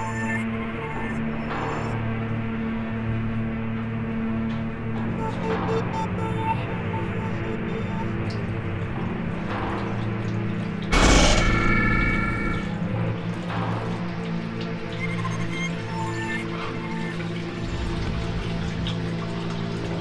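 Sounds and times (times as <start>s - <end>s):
film score sustained tones: 0.0s - 20.0s.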